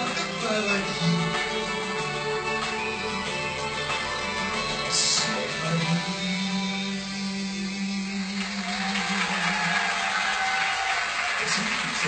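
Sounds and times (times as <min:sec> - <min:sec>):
studio audience applauding: 0:00.0 - 0:05.6, 0:08.2 - 0:12.0.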